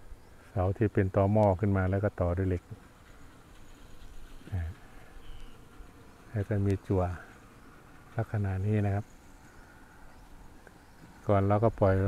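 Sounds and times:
insects buzzing: 0.0s - 12.0s
man talking: 0.6s - 2.7s, 4.5s - 4.8s, 6.3s - 7.3s, 8.2s - 9.1s, 11.2s - 12.0s.

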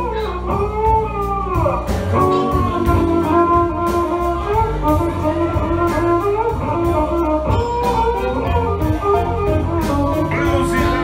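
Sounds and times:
bass guitar: 0.0s - 11.0s
electric guitar: 0.0s - 11.0s
held melodic lead notes: 0.0s - 11.0s
steady drum beat: 0.0s - 11.0s.

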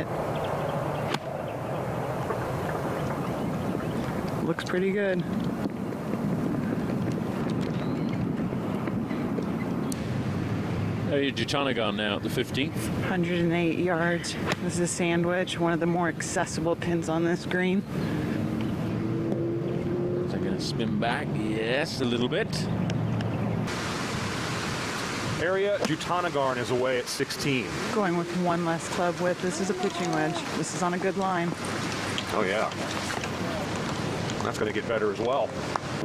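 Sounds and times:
outdoor background noise: 0.0s - 36.0s.

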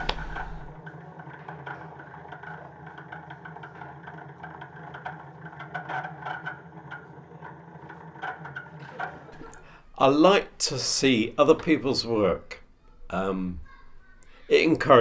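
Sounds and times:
low machine hum: 0.0s - 2.8s
faint clicks and clatter: 0.0s - 9.6s.

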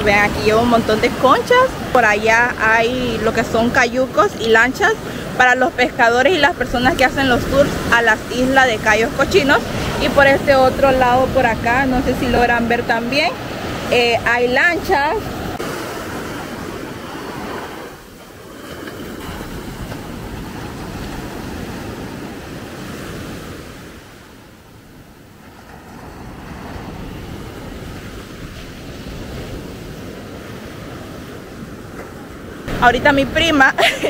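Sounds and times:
waves breaking on sandy beach: 0.0s - 34.0s.

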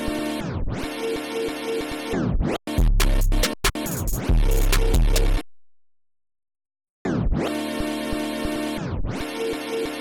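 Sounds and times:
record scratch pitch swoop: 2.2s - 5.4s
sampled music loop with drums: 2.7s - 5.5s.

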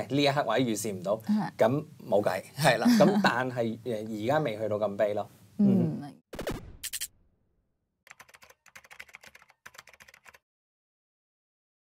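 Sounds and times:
keyboard key clicks: 8.1s - 10.4s.

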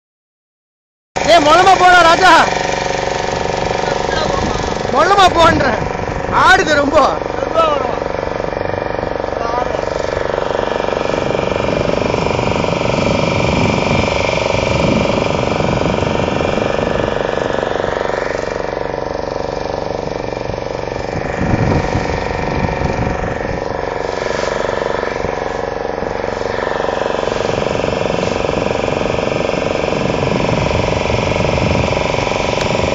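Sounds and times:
motor boat engine running: 1.2s - 32.9s
rushing wind and water: 1.2s - 32.9s.

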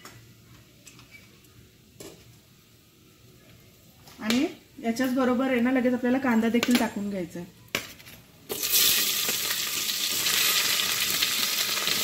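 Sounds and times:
spices crackling in oil: 8.5s - 12.0s.

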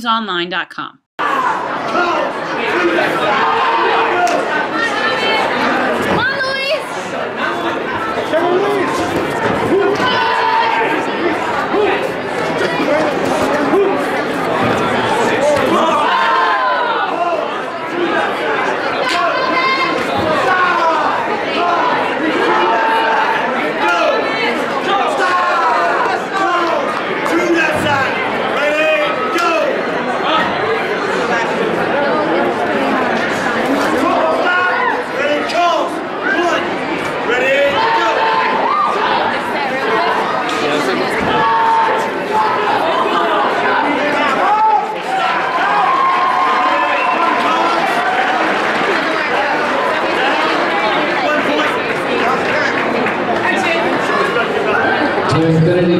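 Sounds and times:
crowd talking and calling out: 0.0s - 55.9s.

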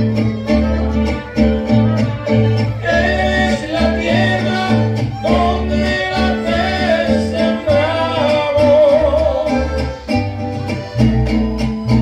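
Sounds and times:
pulsing bass line: 0.0s - 12.0s
strummed guitars: 0.0s - 12.0s
trumpet melody: 0.0s - 12.0s
violins: 0.0s - 12.0s.

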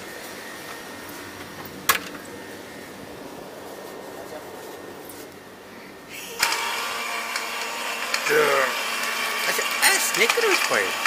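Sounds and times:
blender motor running: 6.1s - 11.0s.

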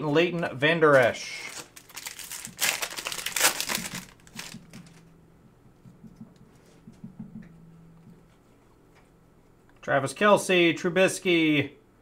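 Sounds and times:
foil wrapper crinkling and tearing: 0.9s - 5.0s.

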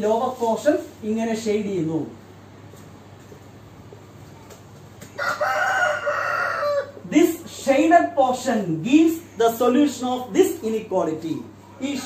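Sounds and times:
rooster crowing: 5.2s - 7.0s.

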